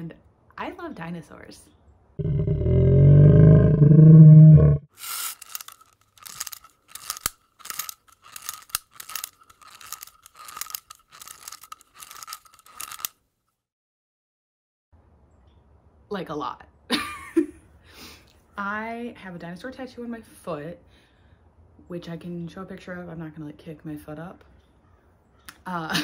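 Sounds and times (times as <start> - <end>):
dinosaur roar: 2.2 - 4.9.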